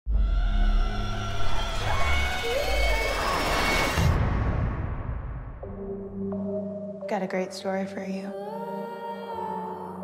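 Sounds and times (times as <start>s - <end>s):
low rumble and rushing: 0.1s - 6.1s.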